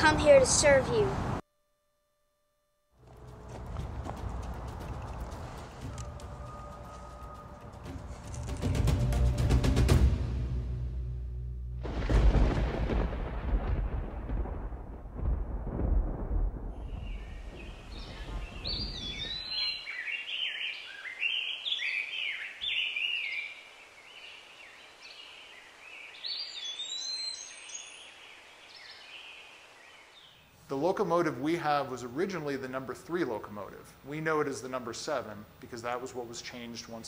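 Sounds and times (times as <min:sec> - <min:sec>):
deep boom rumbling: 0:10.0 - 0:19.6
birds chirping and singing: 0:16.8 - 0:30.5.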